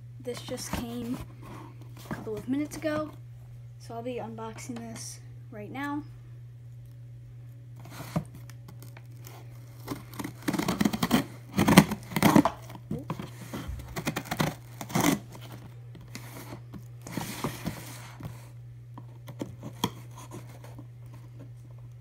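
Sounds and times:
steady low hum: 0:00.0 - 0:22.0
cardboard box tearing: 0:09.8 - 0:18.2.

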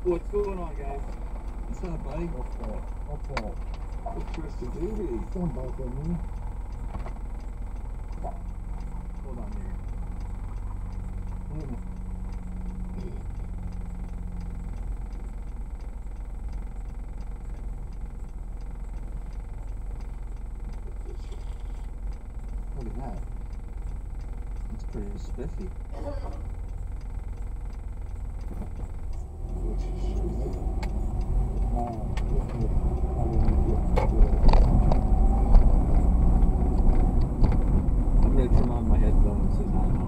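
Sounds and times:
car engine idling: 0:00.0 - 0:40.0.

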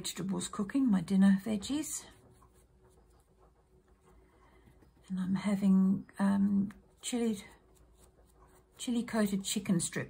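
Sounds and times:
brush rubbing on paper: 0:00.0 - 0:10.0.

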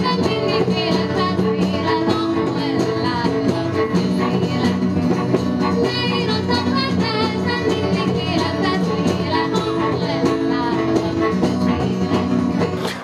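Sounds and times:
woman singing with vibrato: 0:00.0 - 0:05.1, 0:05.7 - 0:12.6.

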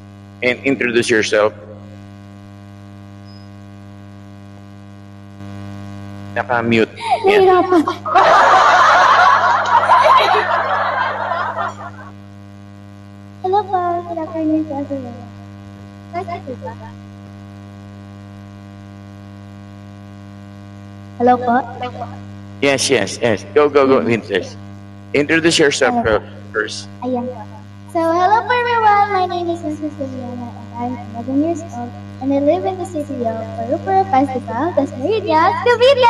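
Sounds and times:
electrical hum: 0:00.0 - 0:36.0.

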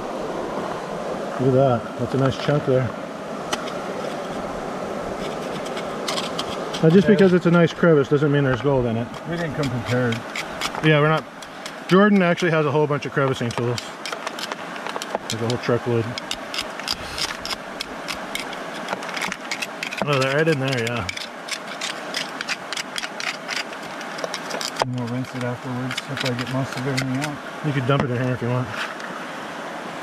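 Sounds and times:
creek rushing: 0:00.0 - 0:30.0
metal tool scraping gravel: 0:03.5 - 0:04.4, 0:05.2 - 0:29.0
metal clicking on rock: 0:13.3 - 0:27.3.

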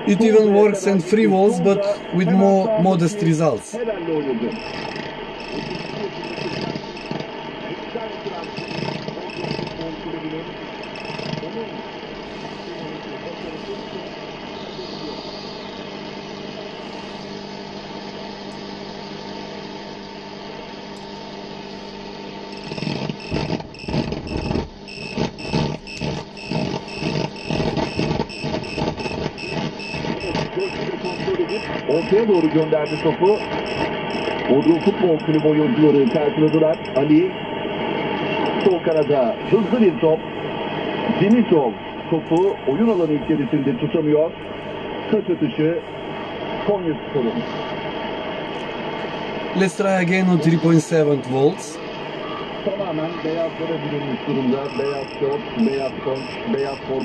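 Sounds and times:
choppy voice on radio: 0:00.0 - 0:04.8, 0:05.7 - 0:06.9, 0:29.3 - 0:37.2, 0:38.5 - 0:40.0
radio static hiss: 0:00.0 - 0:57.0
radio whistling tones: 0:04.5 - 0:07.2, 0:12.3 - 0:16.1, 0:22.6 - 0:37.3, 0:38.0 - 0:39.4, 0:49.6 - 0:57.0.

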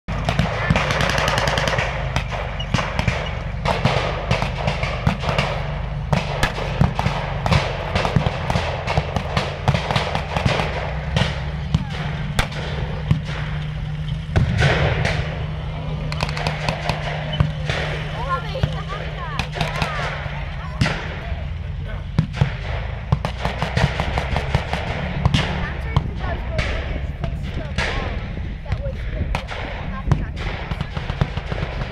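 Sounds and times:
armoured vehicle engine running: 0:00.0 - 0:31.9
blank gunfire: 0:00.1 - 0:21.4, 0:22.2 - 0:31.9.

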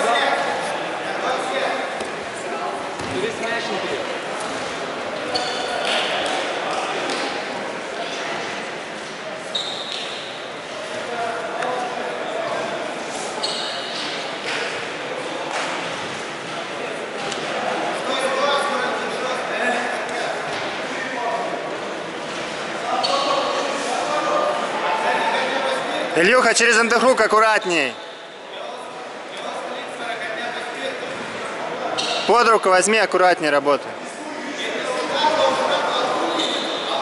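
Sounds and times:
indistinct voices in hall: 0:00.0 - 0:37.0.

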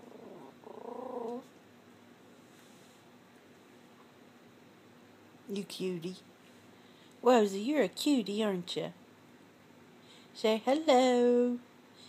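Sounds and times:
small dog whining: 0:00.0 - 0:01.5.

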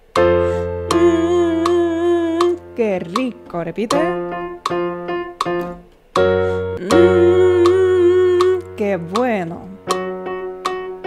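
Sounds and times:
electric keyboard notes: 0:00.0 - 0:11.0
woman humming with vibrato: 0:00.9 - 0:02.6, 0:06.8 - 0:09.4
woman singing: 0:00.9 - 0:04.3, 0:06.8 - 0:09.8.

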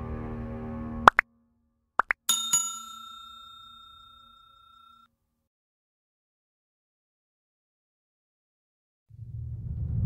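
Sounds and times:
background music: 0:00.0 - 0:01.4
pop sound effects: 0:02.0 - 0:02.3
bell-like ding: 0:02.3 - 0:05.1.

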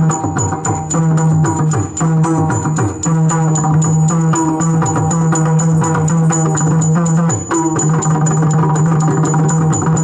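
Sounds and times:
hand cymbals ringing: 0:00.0 - 0:10.0
rapid drumming: 0:00.0 - 0:10.0.

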